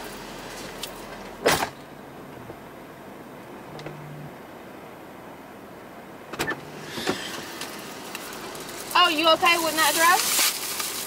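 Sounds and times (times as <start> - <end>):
sharp clicks in car cabin: 6.3 - 8.2.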